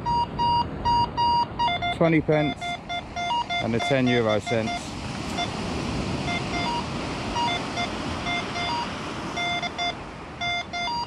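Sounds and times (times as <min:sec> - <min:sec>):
metal detector short beeps: 0:00.0 - 0:05.5, 0:06.3 - 0:11.0.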